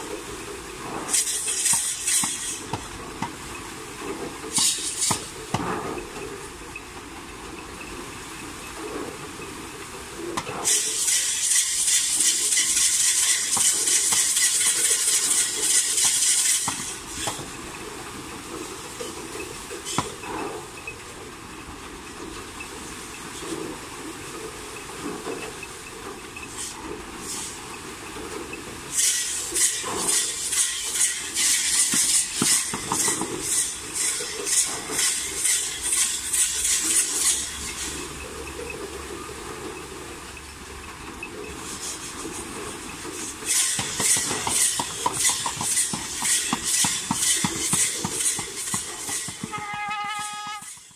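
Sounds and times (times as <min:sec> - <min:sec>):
rhythmic hissing rattle: 0:00.0 - 0:50.9.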